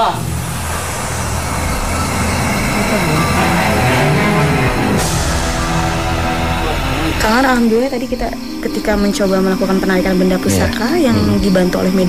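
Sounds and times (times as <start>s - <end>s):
low droning music: 0.0s - 12.0s
low voice: 10.4s - 11.6s.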